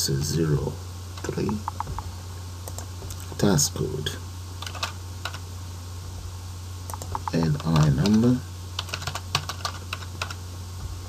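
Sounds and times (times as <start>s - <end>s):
keyboard typing: 1.4s - 2.0s, 4.6s - 5.4s, 6.9s - 8.2s, 8.8s - 10.4s.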